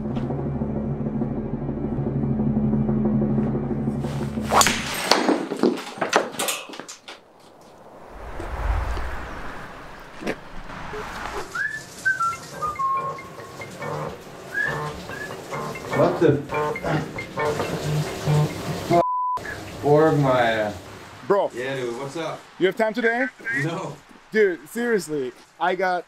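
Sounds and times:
low rumble: 0:07.3 - 0:11.6
descending whistle-like notes: 0:07.9 - 0:13.2, 0:14.5 - 0:15.4.

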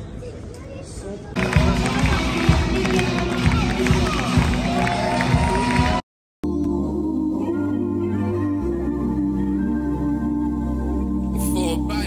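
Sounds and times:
crowd noise: 0:00.0 - 0:06.0
loud music over pa system: 0:01.4 - 0:12.0.

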